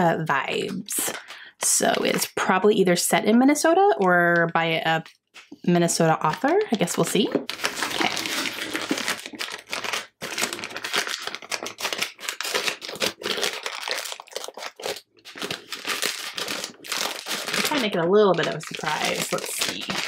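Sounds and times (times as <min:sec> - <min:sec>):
foil wrapping paper crinkling and tearing: 0:07.5 - 0:20.0.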